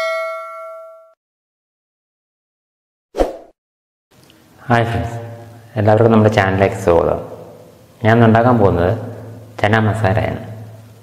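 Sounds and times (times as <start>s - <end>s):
bell ding sound effect: 0.0s - 1.2s.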